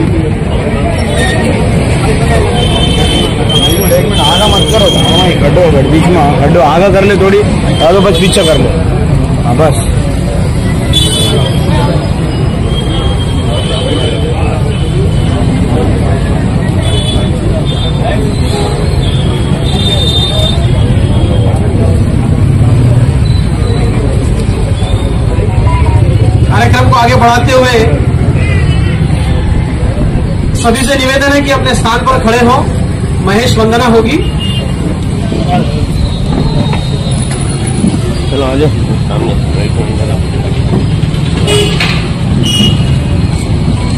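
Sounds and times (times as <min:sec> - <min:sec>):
faint voices: 0:00.0 - 0:43.9
indistinct group talk: 0:00.0 - 0:43.9
road traffic rumble: 0:00.0 - 0:43.9.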